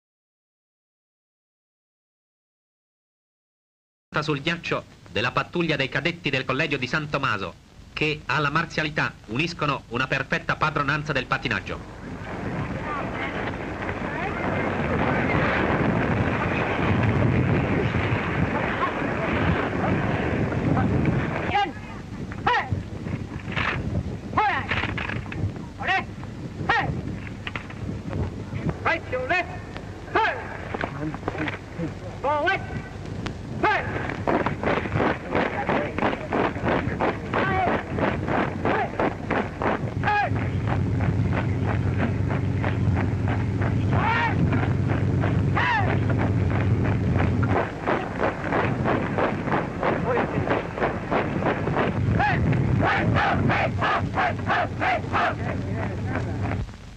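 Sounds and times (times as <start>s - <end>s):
men shouting commands: 20.8s - 21.8s, 22.4s - 22.8s, 24.4s - 24.7s, 26.7s - 27.0s, 28.8s - 31.2s, 32.2s - 33.0s, 33.6s - 34.1s, 37.3s - 37.8s, 38.6s - 39.0s, 40.0s - 40.4s, 43.8s - 44.8s, 45.5s - 46.1s, 52.1s - 56.3s
marching feet: 32.7s - 56.9s.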